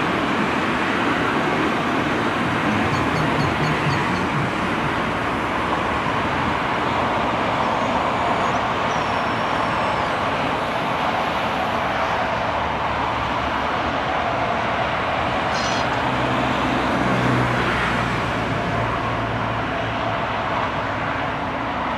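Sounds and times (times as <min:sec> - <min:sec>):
diesel engine running: 0:00.0 - 0:08.2.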